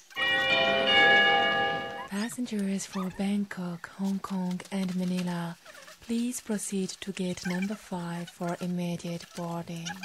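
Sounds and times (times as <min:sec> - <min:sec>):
public-address chime: 0:00.2 - 0:02.5.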